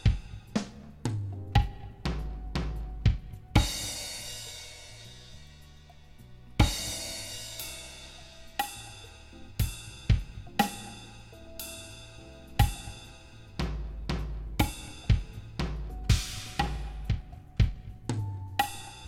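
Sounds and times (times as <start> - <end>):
drum strokes: 0.0 - 5.2, 6.6 - 19.0
cymbal and hi-hat hits: 0.0 - 19.0.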